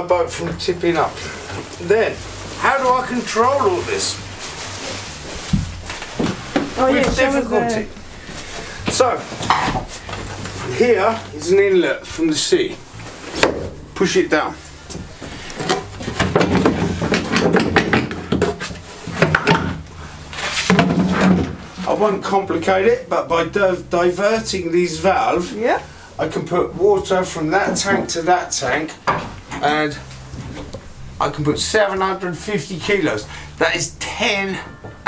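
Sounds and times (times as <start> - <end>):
person climbing out of cot: 5.2 - 7.5
floor panel knocks and clunks: 15.6 - 19.8.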